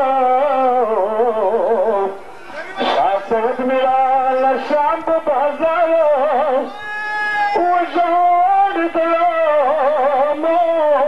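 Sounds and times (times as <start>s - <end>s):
person chanting: 7.6s - 11.0s.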